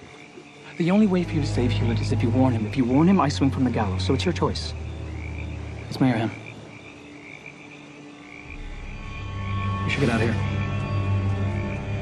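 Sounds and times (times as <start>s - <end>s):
high trilling chorus of night creatures: 0.0s - 12.0s
low music drone: 0.6s - 12.0s.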